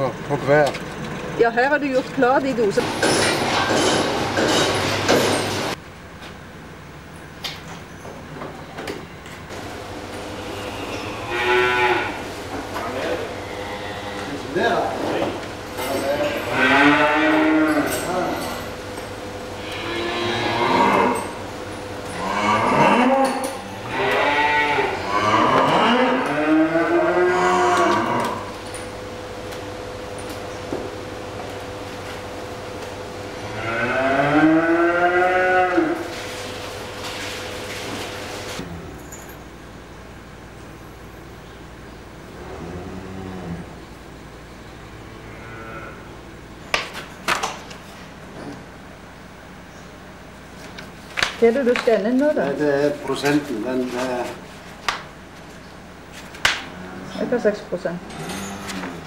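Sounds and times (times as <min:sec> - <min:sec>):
steady hum: 0:00.0 - 0:59.0
cows mooing: 0:10.3 - 0:14.9, 0:16.1 - 0:18.4, 0:19.5 - 0:21.4, 0:22.1 - 0:28.6, 0:33.4 - 0:36.2, 0:42.4 - 0:43.8, 0:44.9 - 0:46.2, 0:56.6 - 0:57.4, 0:58.0 - 0:59.0.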